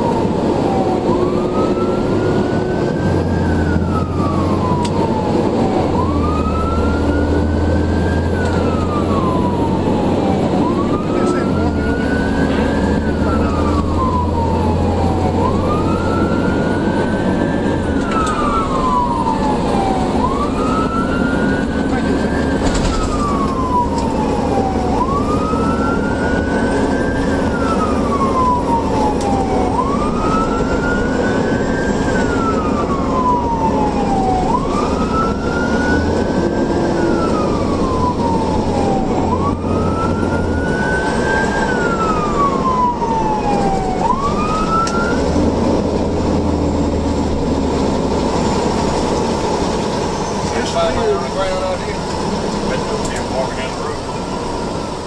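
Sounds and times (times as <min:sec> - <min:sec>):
fire engine siren wailing: 0:00.0 - 0:55.0
truck engine drone: 0:00.0 - 0:55.0.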